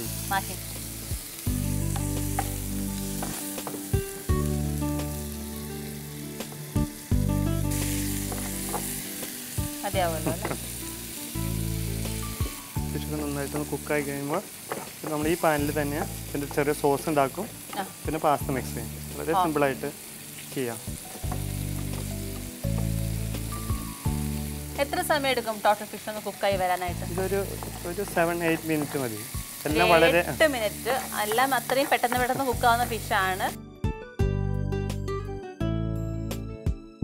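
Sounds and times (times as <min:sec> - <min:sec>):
seafood sizzling in oil: 0:00.0 - 0:33.6
wooden spatula stirring: 0:27.3 - 0:29.0.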